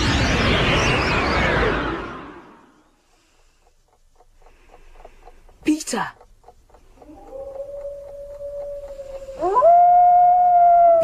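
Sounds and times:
wolves howling: 7.1s - 11.0s.

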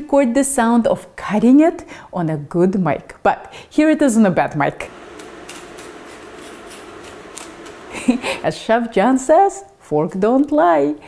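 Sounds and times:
pizza wheel crunching through crust: 4.9s - 8.4s.

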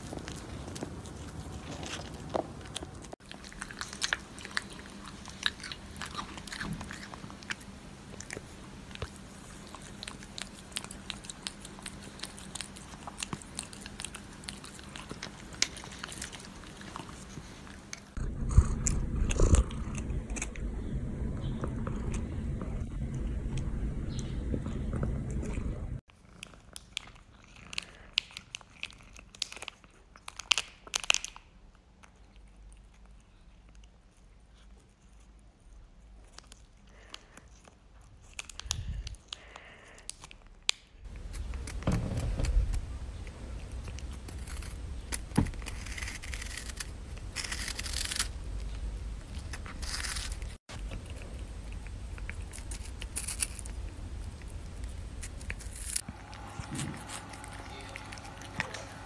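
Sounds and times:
cat chewing wet food: 0.0s - 41.8s, 42.5s - 59.0s
kitten crunching treat: 0.0s - 59.0s.

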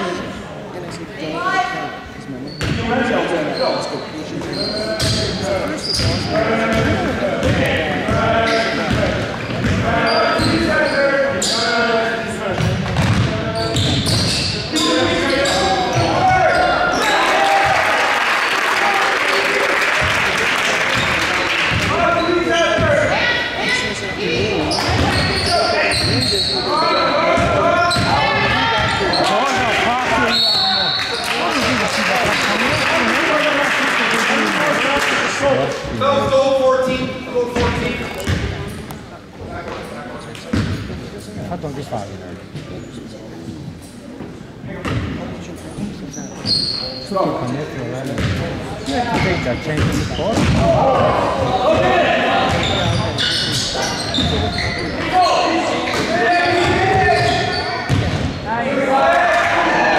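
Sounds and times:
basketball bouncing on hardwood floor: 12.6s - 13.3s, 57.9s - 58.3s
shouts and chatter of people: 13.3s - 38.2s, 48.7s - 59.9s.

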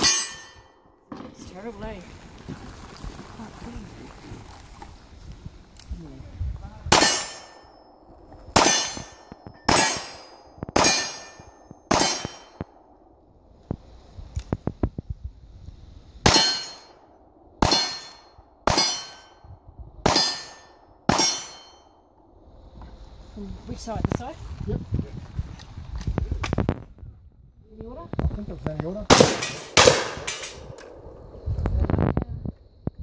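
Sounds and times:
steel target ringing clang: 0.0s - 0.8s, 6.9s - 8.0s, 8.6s - 12.6s, 16.3s - 17.0s, 17.6s - 19.4s, 20.1s - 21.9s.

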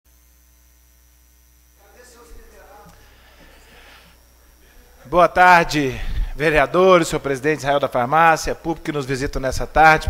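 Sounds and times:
electrical mains hum: 0.1s - 10.0s
faint high whine: 0.1s - 10.0s
room noise: 0.1s - 10.0s.

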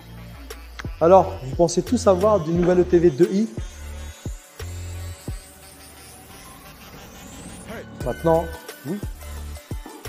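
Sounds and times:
electric truck whine over hum: 3.6s - 9.7s.

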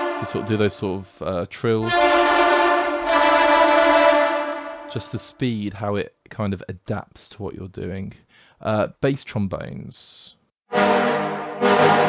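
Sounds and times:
sustained trombone notes: 0.0s - 1.0s, 1.8s - 5.4s, 10.7s - 12.0s.

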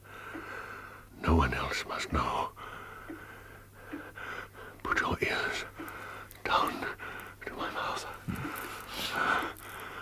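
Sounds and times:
man whispering: 1.2s - 2.6s, 4.8s - 5.8s, 6.4s - 9.6s.

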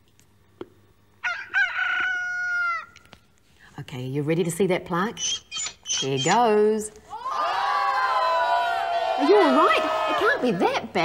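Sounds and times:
rooster-like crow: 1.2s - 3.0s.

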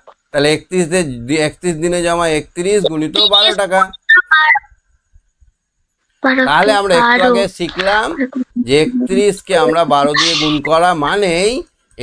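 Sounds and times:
short electronic beeps: 8.2s - 10.7s.

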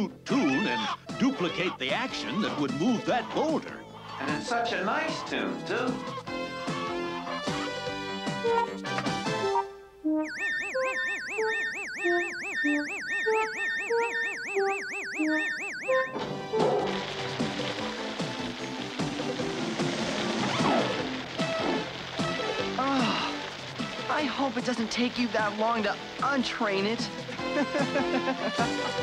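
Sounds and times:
background music: 0.0s - 14.5s, 15.2s - 29.0s
warbling electronic beeps: 10.2s - 16.2s
water spraying from sprinklers: 16.8s - 29.0s.

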